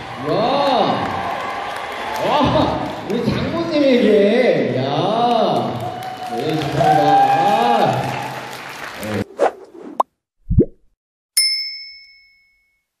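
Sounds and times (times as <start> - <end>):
quick swooshes: 9.2 - 10.7
bright bell-like ding: 11.4 - 12.9.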